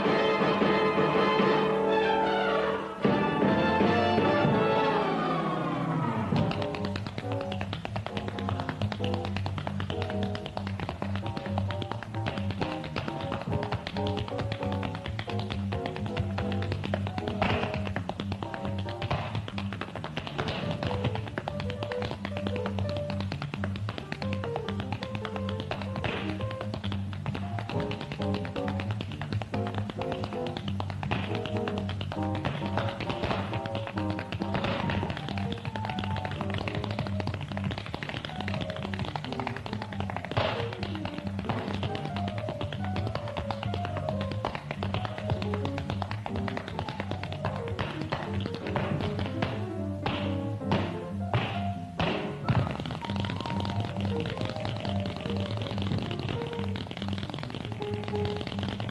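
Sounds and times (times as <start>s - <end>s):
instrumental accompaniment: 0.0s - 58.9s
tap shoes clicking on floor: 6.3s - 58.9s.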